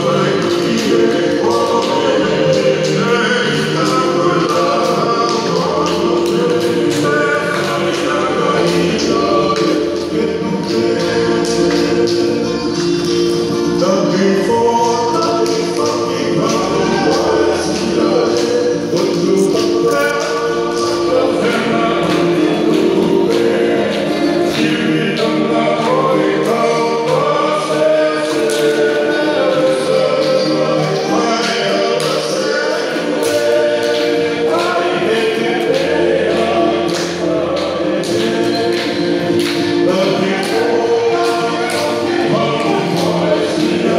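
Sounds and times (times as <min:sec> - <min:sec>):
group singing in harmony: 0:00.0 - 0:43.9.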